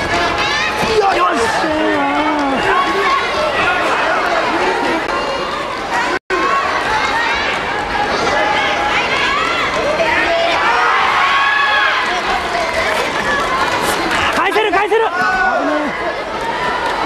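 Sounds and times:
crowd shouting: 0.0 - 17.0.

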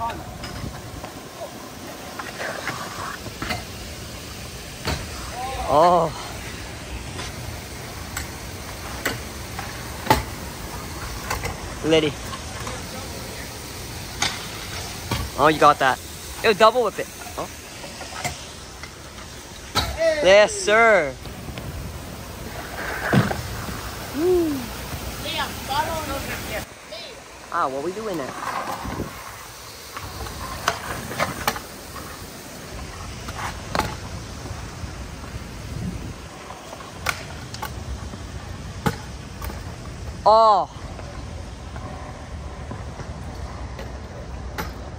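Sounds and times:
scooter wheels rolling on concrete: 0.0 - 44.9
steady outdoor noise: 0.0 - 44.9
wind on microphone: 28.7 - 29.4, 35.5 - 36.4.

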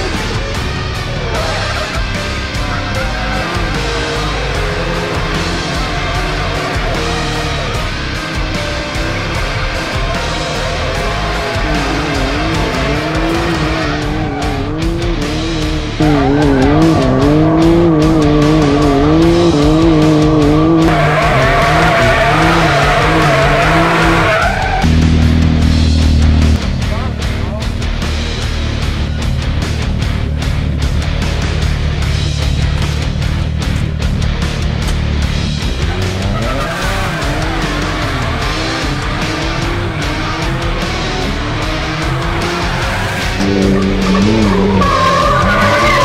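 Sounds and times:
tires skidding and squealing: 0.0 - 25.1, 34.8 - 46.0
engine revving: 0.0 - 46.0
heavy metal music: 0.0 - 46.0.

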